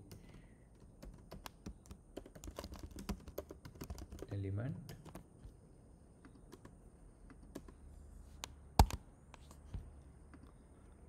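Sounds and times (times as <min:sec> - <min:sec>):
computer keyboard keystrokes: 0:00.0 - 0:04.3, 0:04.9 - 0:05.2, 0:08.8 - 0:09.0.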